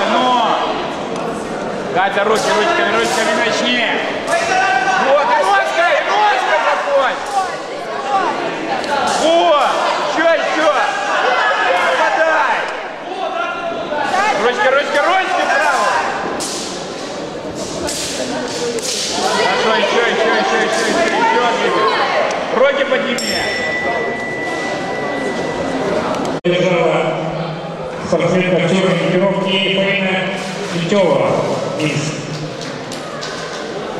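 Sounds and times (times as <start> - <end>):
voices shouting in a hall: 0.0 - 33.9
steady high beep: 23.2 - 26.4.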